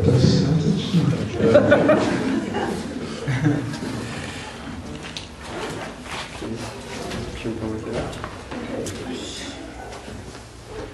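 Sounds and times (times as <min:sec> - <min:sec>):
low voice murmuring: 0:06.4 - 0:10.9.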